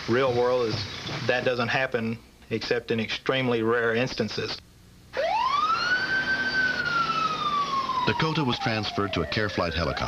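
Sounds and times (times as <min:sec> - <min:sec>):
ambulance siren wailing: 0:05.1 - 0:10.0.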